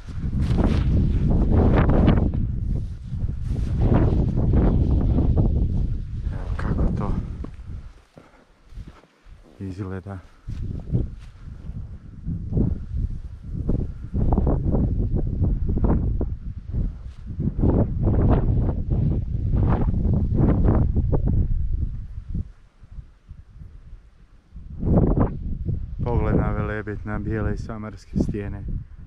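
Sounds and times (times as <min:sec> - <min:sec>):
wind buffeting microphone: 0:00.0 - 0:08.1, 0:08.7 - 0:29.0.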